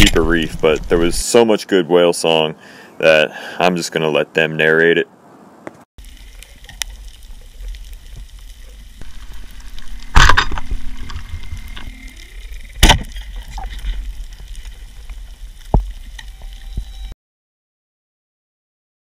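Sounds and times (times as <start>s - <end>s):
steady crackling background: 0.0s - 3.6s, 5.6s - 17.2s
humpback whale song: 10.5s - 14.0s, 16.0s - 17.1s.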